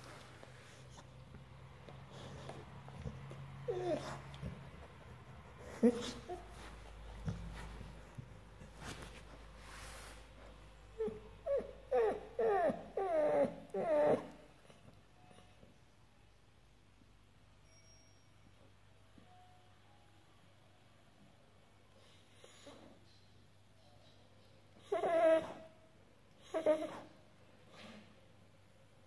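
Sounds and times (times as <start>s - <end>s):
dog whining: 0.7s - 8.4s, 10.9s - 15.5s, 24.8s - 25.8s, 26.4s - 27.2s.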